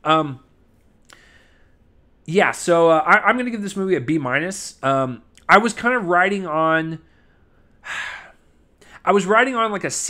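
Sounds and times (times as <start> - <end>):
man breathing near microphone: 1.1 - 1.9, 7.0 - 9.0.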